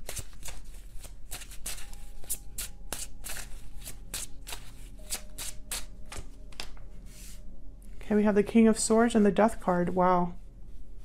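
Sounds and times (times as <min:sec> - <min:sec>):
cards being shuffled: 0:00.0 - 0:07.4.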